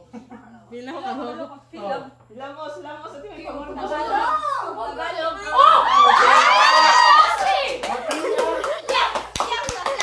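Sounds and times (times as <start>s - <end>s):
children talking: 3.2s - 10.0s
group clapping hands: 6.1s - 10.0s.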